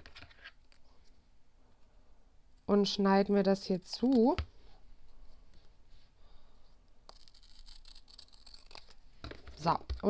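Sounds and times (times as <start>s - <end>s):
scissors cutting paper: 7.1s - 9.0s.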